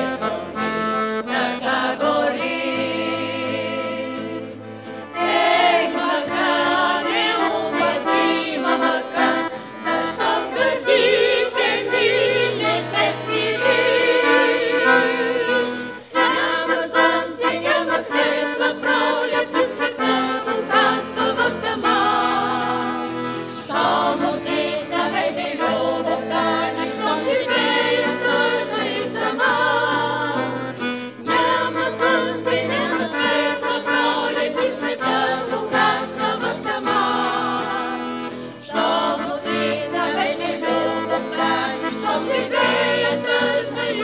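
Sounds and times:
guitar: 0:00.0 - 0:44.0
instrumental accompaniment: 0:00.0 - 0:44.0
women singing in harmony: 0:00.0 - 0:44.0.

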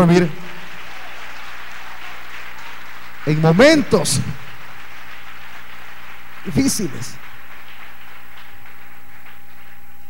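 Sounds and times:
background hiss: 0:00.0 - 0:10.0
low electrical hum: 0:00.0 - 0:10.0.

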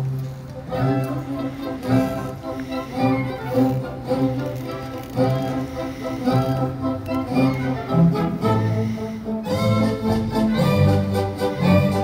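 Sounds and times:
cello and bass line: 0:00.0 - 0:12.0
orchestra playing dance music: 0:00.6 - 0:12.0.

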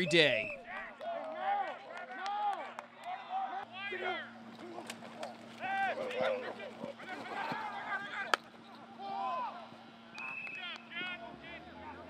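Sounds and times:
people calling out: 0:00.0 - 0:09.8
faint steady hum: 0:00.0 - 0:12.0.

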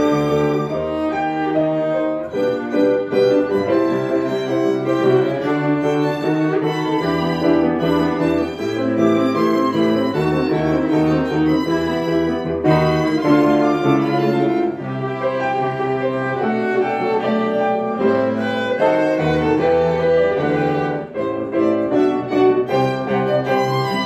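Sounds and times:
cello and piano bass notes: 0:00.0 - 0:24.0
violins playing melody: 0:00.0 - 0:24.0.

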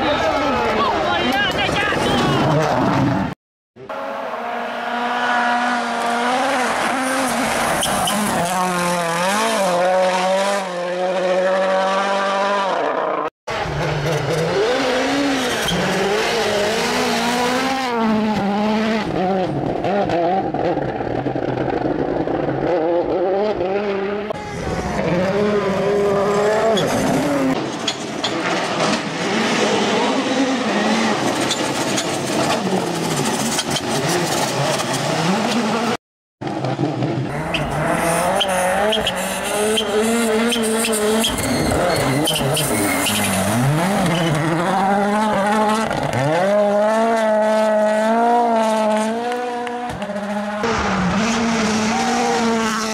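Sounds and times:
rally car engines revving: 0:00.1 - 0:52.9.

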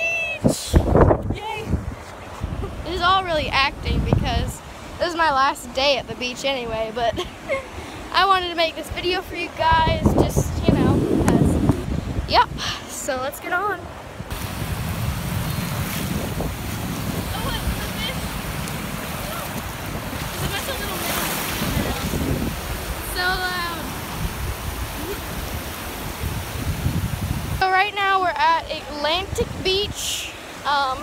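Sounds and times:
wind rumbling on microphone: 0:00.0 - 0:08.2, 0:08.8 - 0:31.0
ocean surf washing up: 0:00.0 - 0:31.0.

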